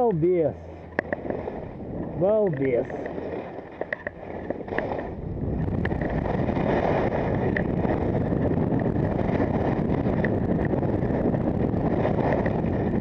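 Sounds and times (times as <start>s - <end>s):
wind rushing over microphone: 0.0s - 13.0s
skis running over packed snow: 1.1s - 13.0s.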